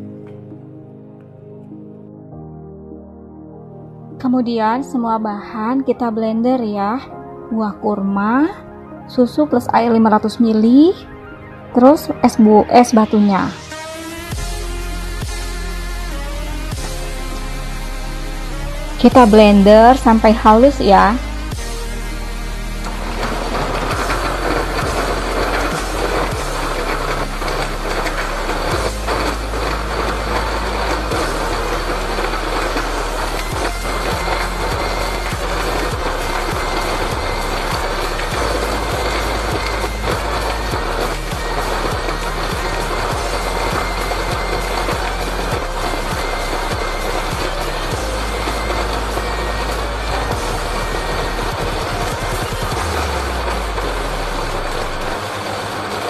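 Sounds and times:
background music: 0.0 - 56.0
blender crushing ice: 13.1 - 56.0.

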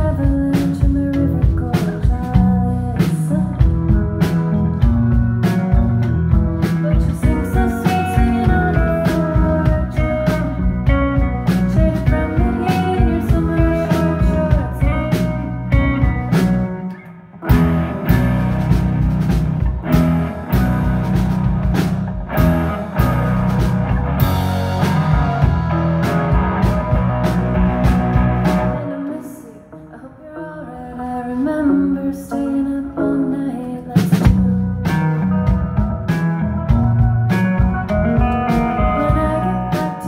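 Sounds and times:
live rock band: 0.0 - 40.0.

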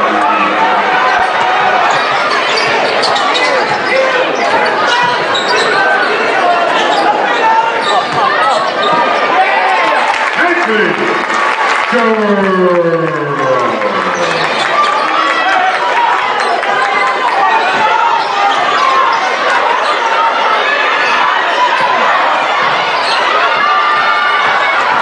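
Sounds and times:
arena crowd voices: 0.0 - 25.0.

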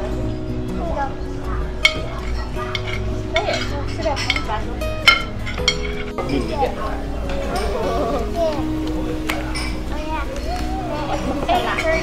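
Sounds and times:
background music: 0.0 - 12.0
cutlery and dishes clinking: 1.7 - 12.0.

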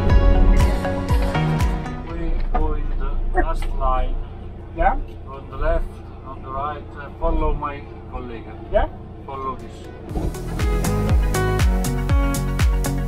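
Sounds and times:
vehicle engine idling: 0.0 - 13.0
people talking: 2.0 - 9.9.

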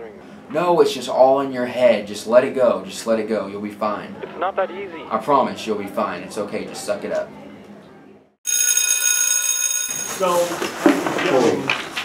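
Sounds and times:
electric ringing tone: 8.5 - 10.5.

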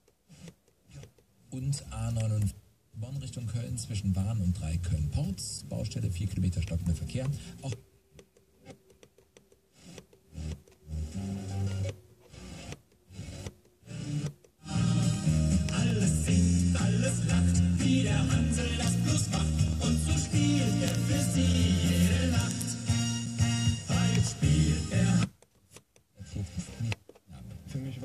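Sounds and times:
music with strong bass line: 14.7 - 25.3
radio station snatches while tuning: 15.8 - 23.1.

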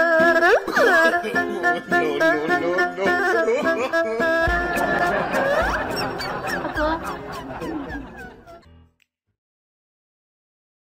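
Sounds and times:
music with steady beat: 0.0 - 8.9.

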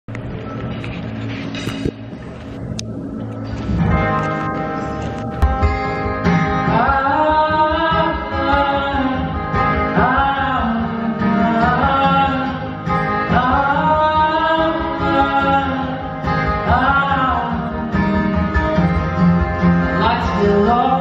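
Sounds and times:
stage and room sound: 0.1 - 21.0
acoustic guitar chords: 0.3 - 21.0.

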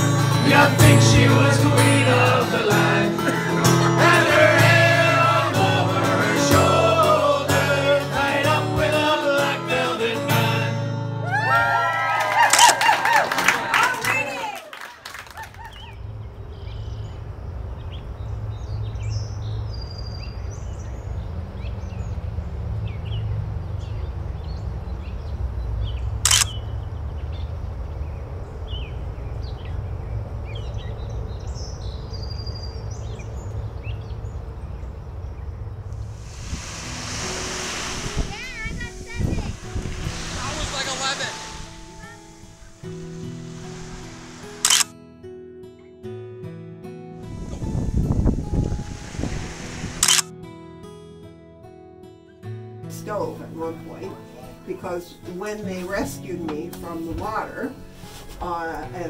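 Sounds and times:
music with crowd singing along: 0.0 - 11.2
wave washing up beach: 3.5 - 7.3, 36.0 - 44.7, 47.2 - 50.3
low rumble: 34.3 - 44.7, 47.2 - 50.2.

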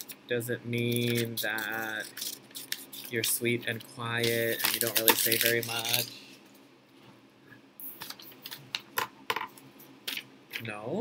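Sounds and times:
small objects clicking on desk: 8.0 - 10.6.

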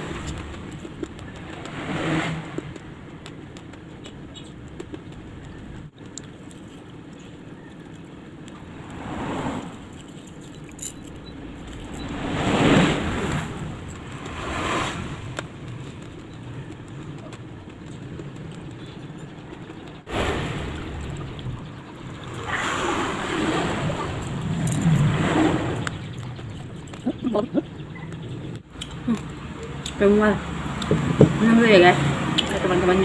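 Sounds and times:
traffic hum: 0.0 - 33.0.

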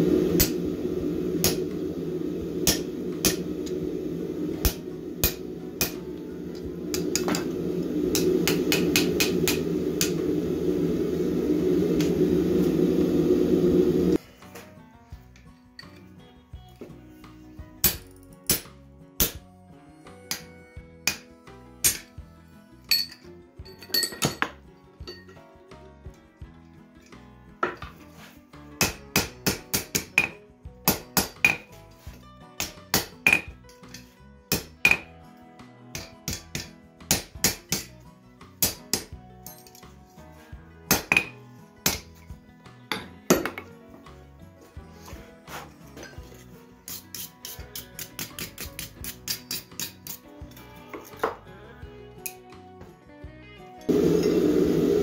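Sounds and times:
hammer striking hot steel on anvil: 0.0 - 11.0, 17.8 - 19.4, 21.0 - 22.1, 28.8 - 31.8, 32.6 - 33.6, 34.5 - 35.1, 35.9 - 37.9, 38.6 - 39.6, 40.9 - 42.1, 46.9 - 50.2
background music: 0.0 - 55.0.

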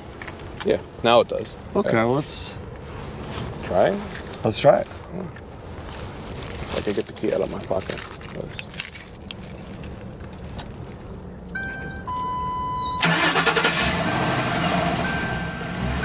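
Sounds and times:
keys jingling: 6.4 - 13.0
car engine cranking and idling: 7.1 - 16.0
electronic beeps: 11.6 - 13.1.

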